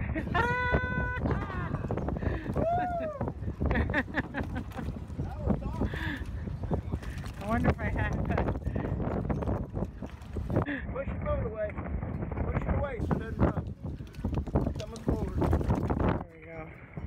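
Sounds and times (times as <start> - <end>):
wind buffeting microphone: 0.0 - 17.0
people talking indistinctly: 5.1 - 9.1, 10.6 - 17.0.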